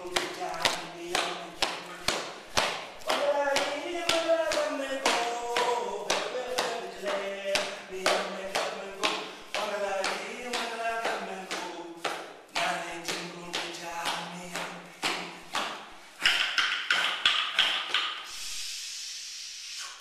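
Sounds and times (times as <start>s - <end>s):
man chanting: 0.0s - 2.1s, 3.0s - 15.5s
clapstick beats: 0.0s - 18.3s.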